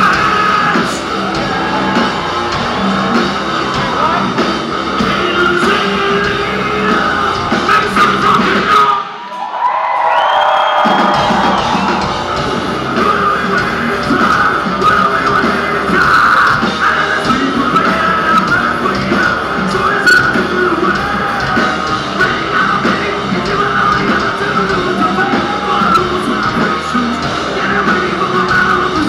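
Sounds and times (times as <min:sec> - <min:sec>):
heavy rock band playing live: 0:00.0 - 0:09.3, 0:10.7 - 0:29.0.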